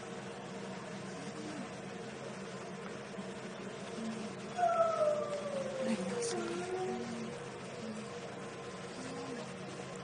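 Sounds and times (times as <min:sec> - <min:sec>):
dog whining: 0:04.6 - 0:07.1.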